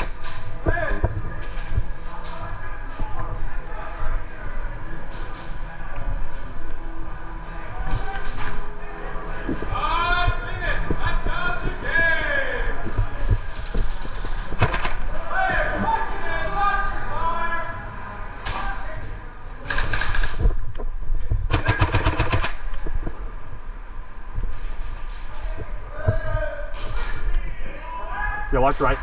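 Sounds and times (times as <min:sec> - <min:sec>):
airsoft guns firing bursts: 0:14.6 - 0:15.1, 0:21.5 - 0:22.7.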